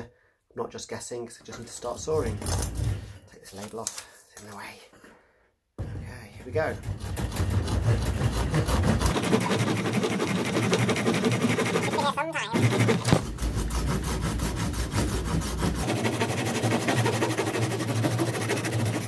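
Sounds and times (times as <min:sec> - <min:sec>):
saw rasping through wood: 0:06.4 - 0:19.0.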